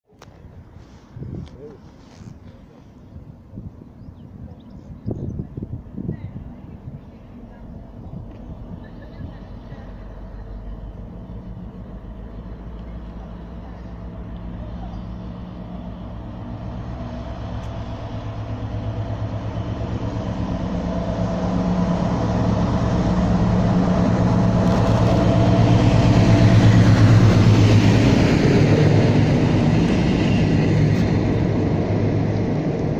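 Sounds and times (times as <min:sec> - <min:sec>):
diesel locomotive engines droning: 0:00.2 - 0:32.9.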